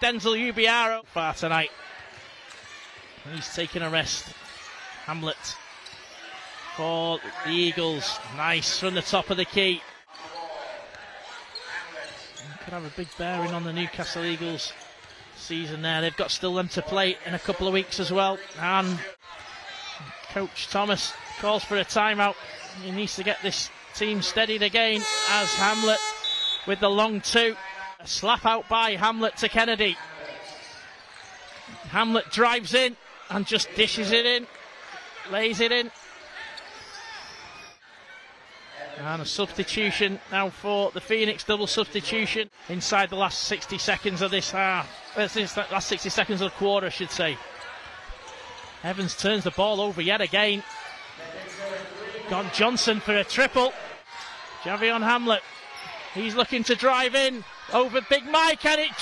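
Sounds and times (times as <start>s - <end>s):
indoor hall noise: 0.0s - 59.0s
crowd murmur in large hall: 9.8s - 12.7s, 30.0s - 31.9s, 34.5s - 40.4s, 47.3s - 49.0s, 50.4s - 52.6s, 53.7s - 54.8s.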